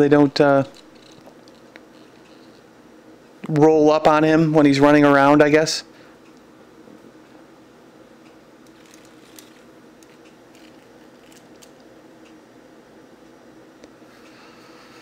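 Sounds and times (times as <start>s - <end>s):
low room hum: 0.0s - 15.0s
plastic figure clicking and rustling: 8.6s - 11.9s.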